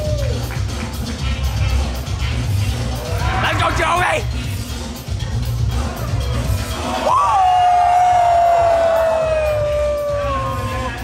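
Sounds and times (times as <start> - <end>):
spectator shouting: 6.9 - 11.0.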